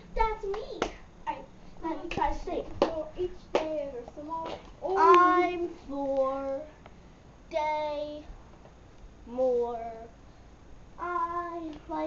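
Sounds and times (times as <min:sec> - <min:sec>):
hand claps: 0:00.5 - 0:01.0, 0:02.1 - 0:03.8
girl's sing-song vocal sounds: 0:01.3 - 0:06.8, 0:11.0 - 0:12.0.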